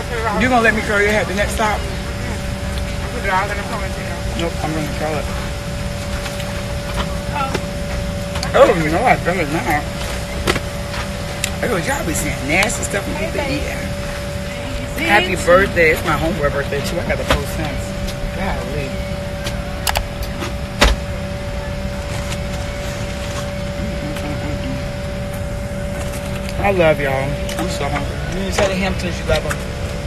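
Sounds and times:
aircraft engine and air rumble: 0.0 - 30.0
constant hum tone: 0.0 - 30.0.

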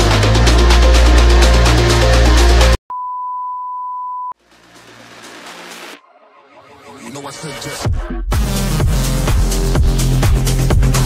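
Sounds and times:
high test-tone beep: 2.9 - 4.4.

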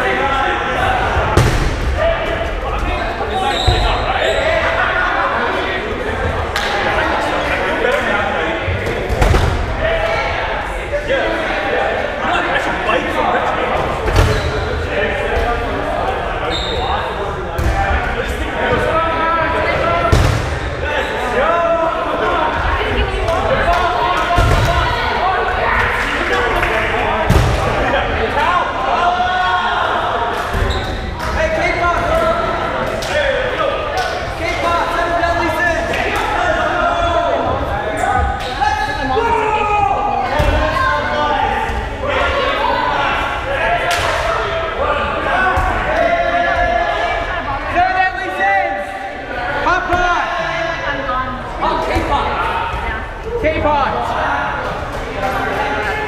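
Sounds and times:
players' voices: 0.0 - 56.0.

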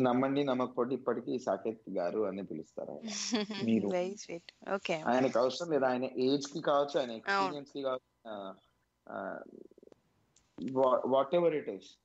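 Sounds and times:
person's creaky vocal sounds: 3.6 - 3.9.

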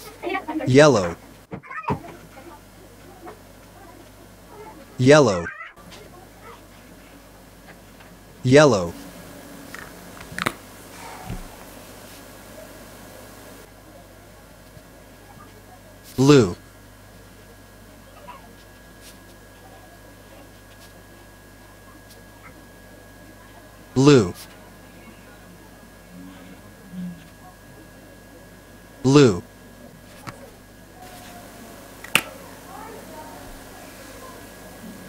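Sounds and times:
electrical hum: 0.0 - 35.0.

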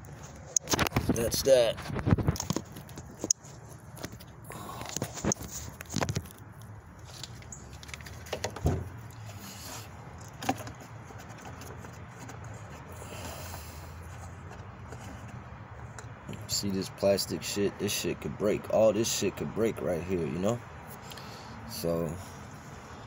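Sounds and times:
phone being handled: 0.2 - 9.2.

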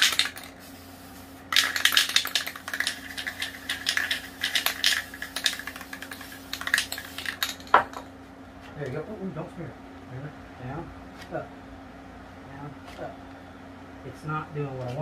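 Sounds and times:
spray can rattling when shaken: 0.0 - 8.1
steady low hum: 0.0 - 15.0.

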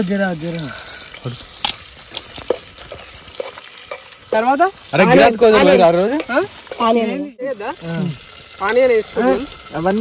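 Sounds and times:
oil sizzling in a pot: 0.0 - 10.0.

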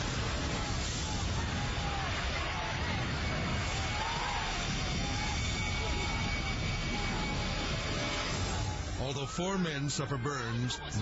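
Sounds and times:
fireball burning with rushing roar: 0.0 - 9.0.

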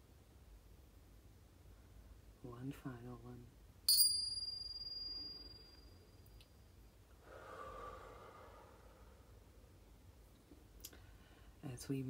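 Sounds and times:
chime ringing: 3.9 - 5.8
soft breath out: 7.2 - 9.4, 11.0 - 11.6.

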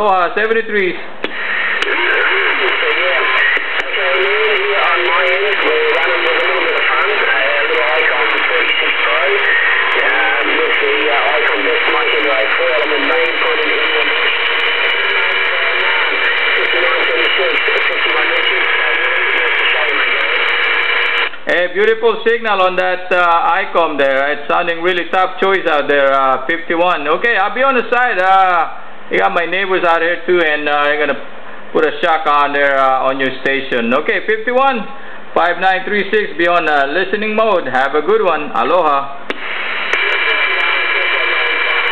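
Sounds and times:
weak garbled radio voice: 1.0 - 21.3, 39.4 - 41.9
radio click: 1.2 - 4.4, 39.3 - 41.9
loud radio static: 1.2 - 21.6, 34.8 - 41.9.

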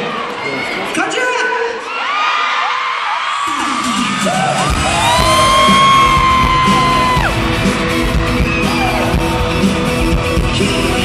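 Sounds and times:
crowd screaming: 1.7 - 11.0
pop concert music over pa: 3.3 - 11.0.

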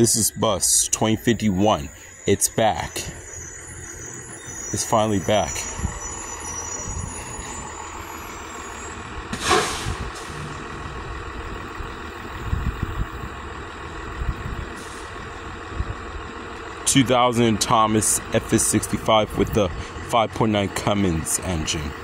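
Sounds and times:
bus diesel engine rumble: 0.0 - 22.0
air brakes hissing: 1.9 - 2.3, 3.0 - 10.6, 14.7 - 15.3.

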